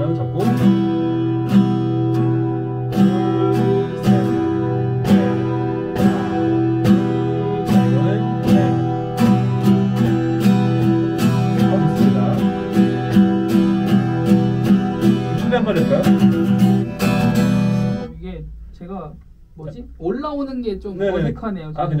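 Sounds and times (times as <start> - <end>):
acoustic guitar strumming: 0.0 - 18.7.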